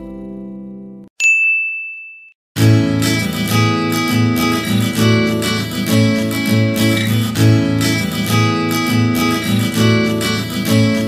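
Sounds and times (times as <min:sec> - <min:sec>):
bell-like chime ding: 0:01.2 - 0:02.4
acoustic guitar music: 0:02.6 - 0:11.0.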